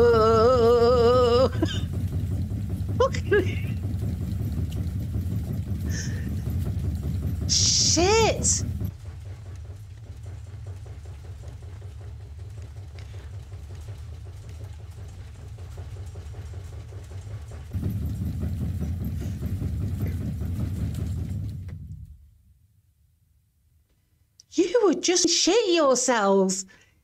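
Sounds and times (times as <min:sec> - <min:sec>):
low deep rumble: 0:00.0 - 0:22.4.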